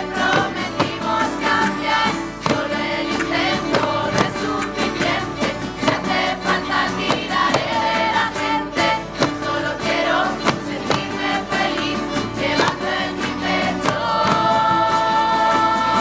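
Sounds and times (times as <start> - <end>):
acoustic guitars: 0.0 - 16.0
choir of young voices singing: 0.0 - 16.0.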